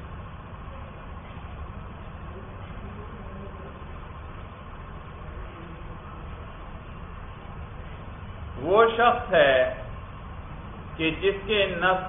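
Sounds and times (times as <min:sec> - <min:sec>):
room recording hum and hiss: 0:00.0 - 0:12.0.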